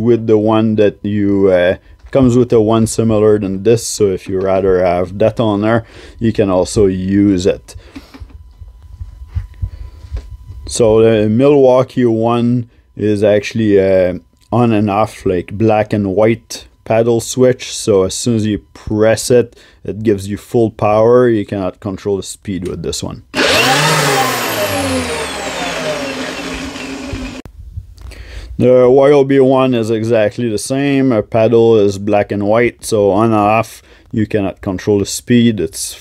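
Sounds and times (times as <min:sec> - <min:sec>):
angle grinder whine winding down: 0:23.3 - 0:27.5.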